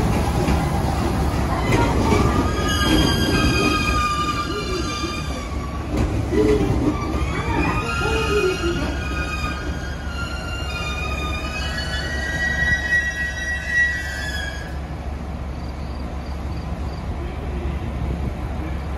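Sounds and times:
train brakes squealing: 1.5s - 14.9s.

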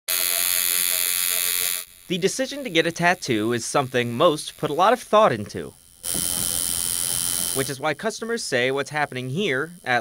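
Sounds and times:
tattoo machine buzzing: 0.1s - 10.0s.

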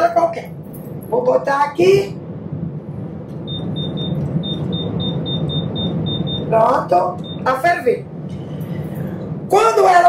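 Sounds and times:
short high-pitched beeps: 3.4s - 6.5s, 7.2s - 7.5s.

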